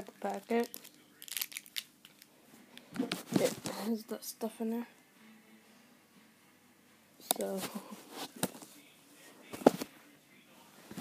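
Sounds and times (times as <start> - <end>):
plastic packet crinkling: 0.1 - 2.3.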